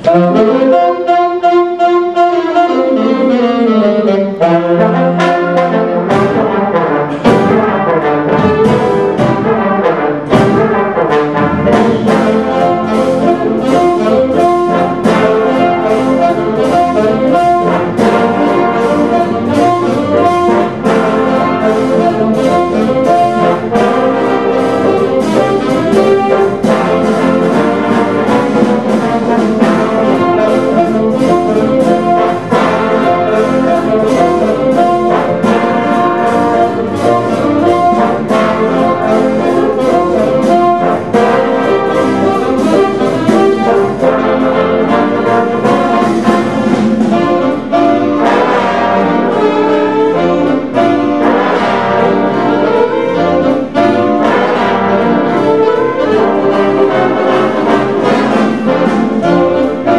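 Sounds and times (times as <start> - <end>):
big band playing swing: 0.0 - 59.9.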